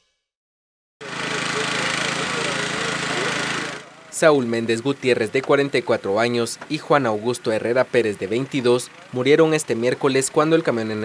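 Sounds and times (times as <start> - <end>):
faint voices: 1.0 - 11.0
small engine running: 1.0 - 11.0.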